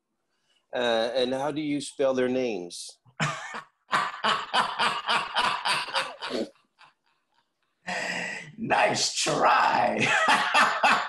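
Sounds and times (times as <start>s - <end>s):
man laughing heartily: 3.2s - 6.9s, 10.0s - 11.0s.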